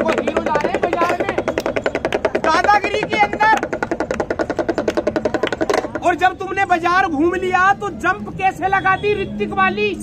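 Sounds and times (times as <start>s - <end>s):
hand drum rattled rapidly: 0.0s - 6.7s.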